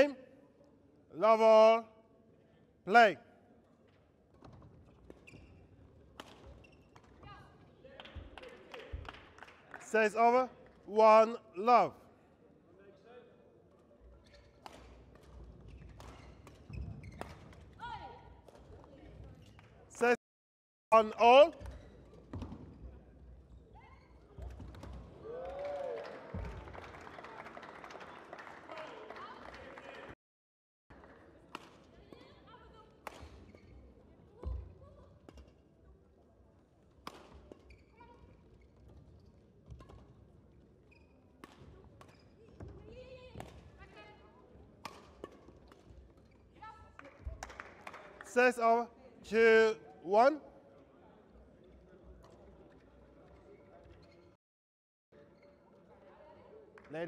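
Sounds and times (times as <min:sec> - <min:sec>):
rackets hitting shuttlecock: 0:06.1 - 0:07.2, 0:14.5 - 0:17.8, 0:33.0 - 0:33.6, 0:37.0 - 0:37.7, 0:44.8 - 0:46.0.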